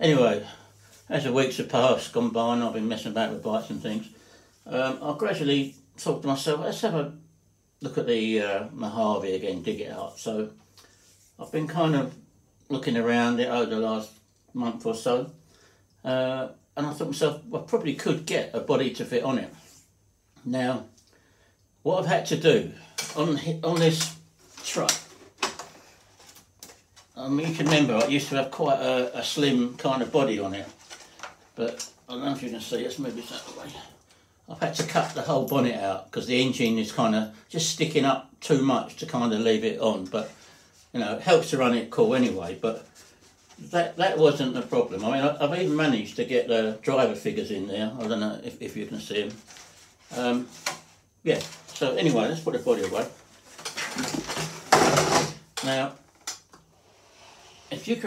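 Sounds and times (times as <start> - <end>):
plastic rustling and clattering: 23.0 - 28.4, 29.7 - 32.0, 49.2 - 56.6.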